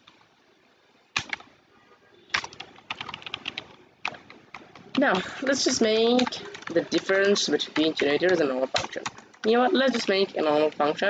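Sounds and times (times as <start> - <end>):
computer keyboard keys clicking: 1.2 - 1.5, 2.3 - 11.0.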